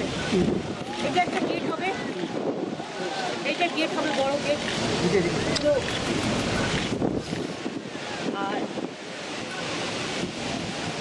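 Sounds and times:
crowd chatter: 0.0s - 11.0s
wind rumbling on microphone: 0.0s - 11.0s.

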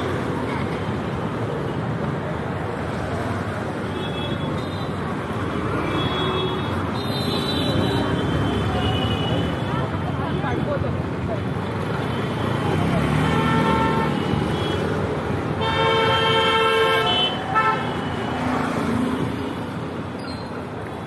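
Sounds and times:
street traffic: 0.0s - 21.0s.

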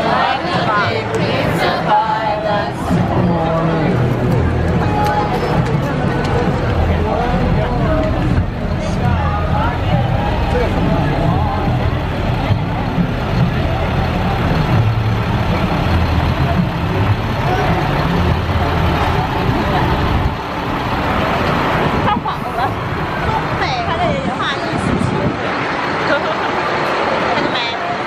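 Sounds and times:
truck diesel engine rumbling: 0.0s - 28.0s.

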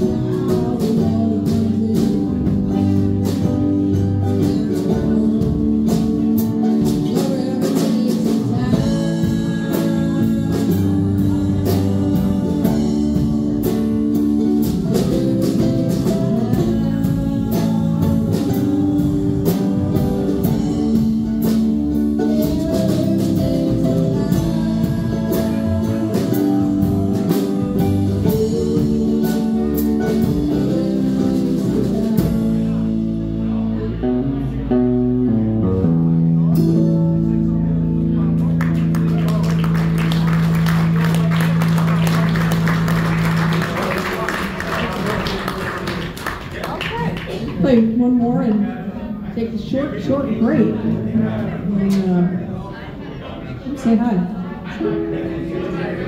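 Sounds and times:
drums and cymbals: 0.0s - 33.5s
acoustic band playing: 0.0s - 56.0s.

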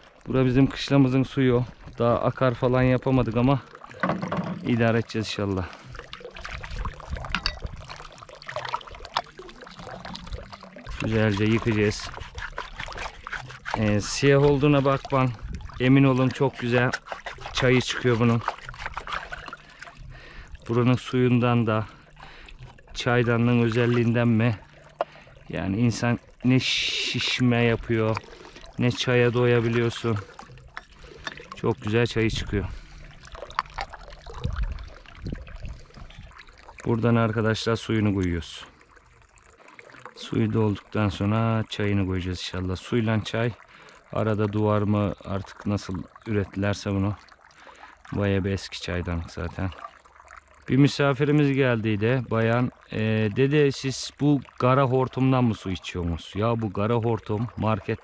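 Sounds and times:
water splashes: 0.0s - 58.0s
water running from a hose: 0.3s - 50.0s
small knocks in water: 3.9s - 5.0s, 6.1s - 9.4s
metal kettle knocks: 4.0s - 4.7s.

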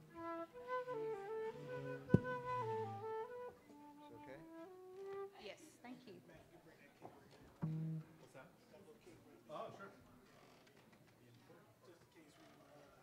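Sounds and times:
flute playing held notes: 0.0s - 5.4s.

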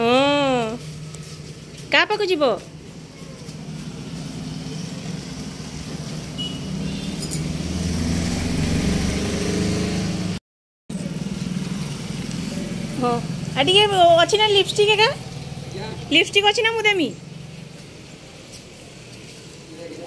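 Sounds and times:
motorcycle engines passing: 0.0s - 20.0s.

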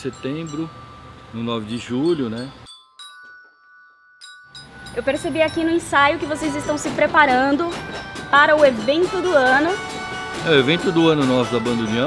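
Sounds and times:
bell lyre note ringing: 0.0s - 12.0s.

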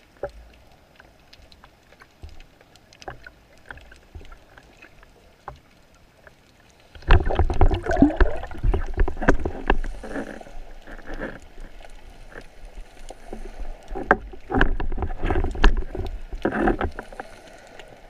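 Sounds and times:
faint underwater clicks: 0.0s - 18.0s
underwater rumbling and bubbling: 0.0s - 18.0s.

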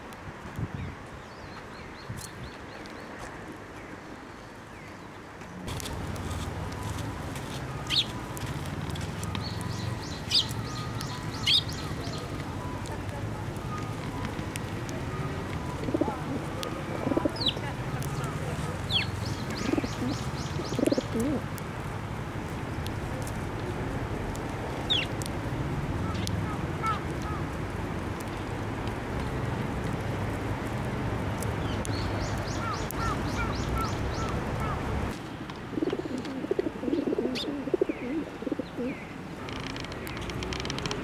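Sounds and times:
sparrow chirps: 9.3s - 12.4s, 18.9s - 21.4s, 31.8s - 34.8s
pigeons cooing: 15.3s - 17.6s, 18.9s - 21.4s, 35.7s - 39.1s.

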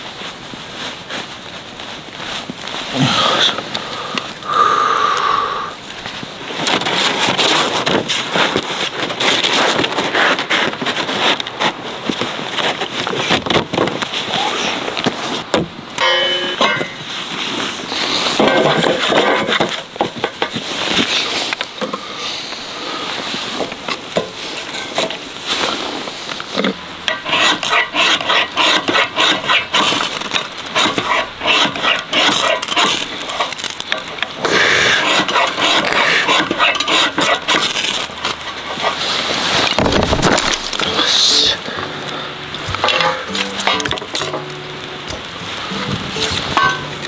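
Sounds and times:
metal stand and firewood clanking: 15.5s - 17.2s, 18.3s - 20.6s, 24.0s - 25.7s, 26.5s - 47.0s
fire-starter rod scraping: 16.0s - 47.0s.

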